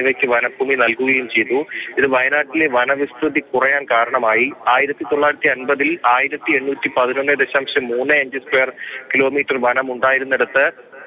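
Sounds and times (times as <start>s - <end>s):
man speaking over telephone line: 0.0s - 11.0s.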